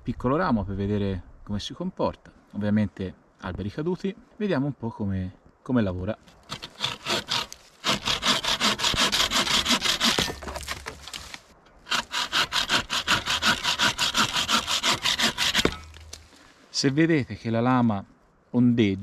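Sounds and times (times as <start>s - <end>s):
bucksaw cutting branch: 6.3s - 16.4s.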